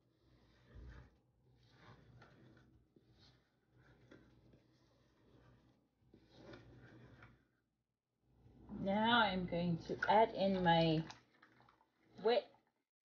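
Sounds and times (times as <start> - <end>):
hands rustling flour in bowl: 0.0 - 7.6.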